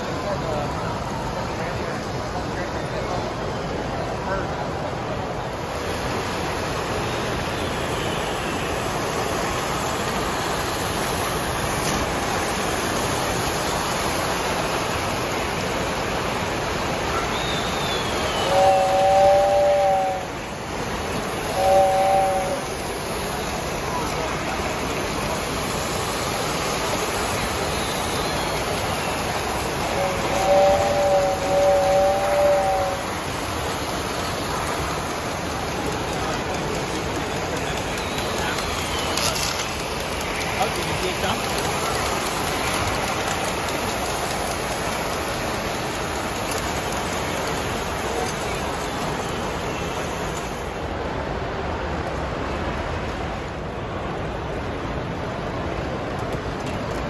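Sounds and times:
model trains rumbling on track: 0.0s - 57.0s
model train whistle: 17.0s - 23.2s, 26.6s - 33.8s, 37.4s - 40.2s.

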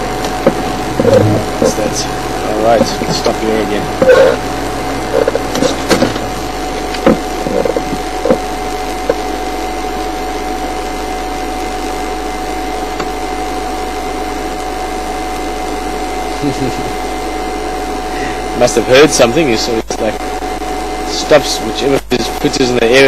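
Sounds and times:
vehicle engine idling: 0.0s - 9.3s
thin steady whine: 0.0s - 23.0s
short knocks and blips: 0.2s - 1.9s.

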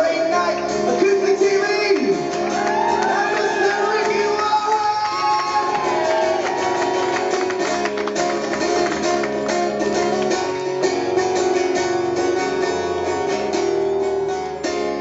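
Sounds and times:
acoustic guitar strummed hard: 0.0s - 15.0s.

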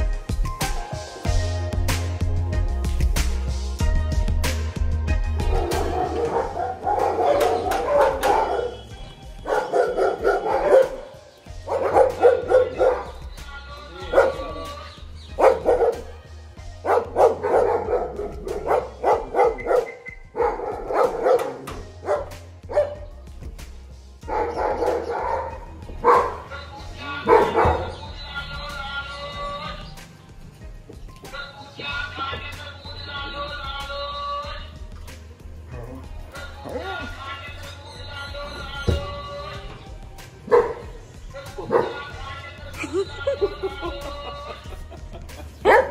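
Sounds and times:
background music: 0.0s - 45.9s
dog barking: 5.4s - 13.2s, 14.0s - 14.7s, 15.4s - 16.2s, 16.8s - 23.0s, 24.2s - 26.5s, 27.2s - 28.0s, 40.4s - 41.0s, 41.6s - 42.2s, 45.6s - 45.9s.

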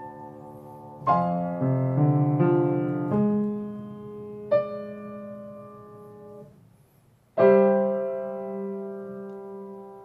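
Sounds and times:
upright piano chords: 0.0s - 6.7s, 7.3s - 10.0s.

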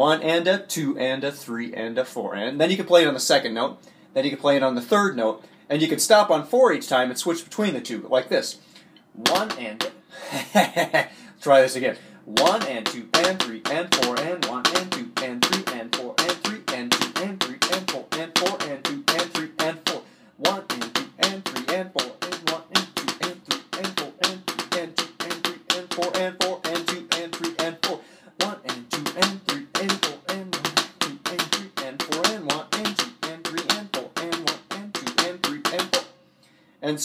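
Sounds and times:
drumsticks tapping practice pad: 9.2s - 10.0s, 12.4s - 36.1s.

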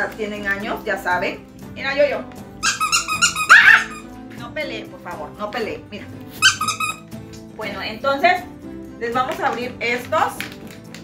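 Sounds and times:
dog yelping: 2.6s - 4.1s, 6.4s - 7.0s
small dog squealing whine: 2.6s - 4.1s, 6.4s - 7.1s.

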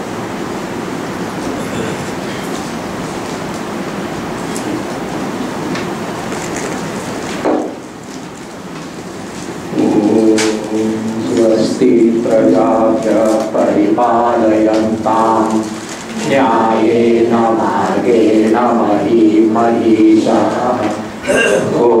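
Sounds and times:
steady rushing noise: 0.0s - 22.0s
man chanting a prayer: 9.7s - 16.3s.

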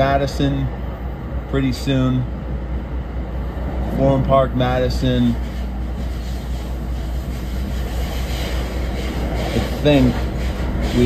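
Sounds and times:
train rumble from inside: 0.0s - 11.0s.

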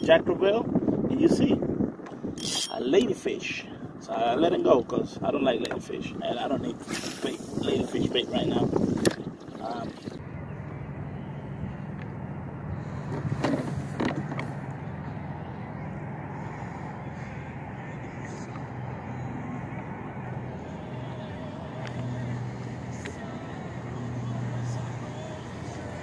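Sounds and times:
wind noise: 0.0s - 10.2s
boat motor humming: 8.1s - 26.0s
water: 8.9s - 10.2s.

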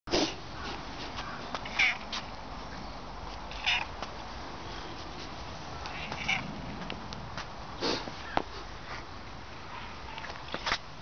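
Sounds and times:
cat meowing: 1.6s - 2.1s, 3.5s - 3.9s, 5.9s - 6.5s.

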